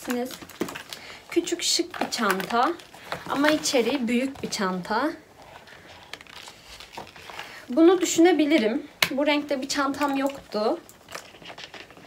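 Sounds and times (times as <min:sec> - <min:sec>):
paper rustling and crinkling: 0:00.0 - 0:08.3, 0:09.8 - 0:12.0.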